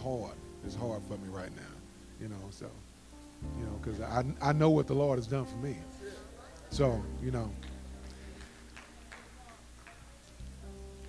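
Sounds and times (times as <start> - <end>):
low steady hum: 0.0 - 11.0
faint irregular clicks: 7.5 - 11.0.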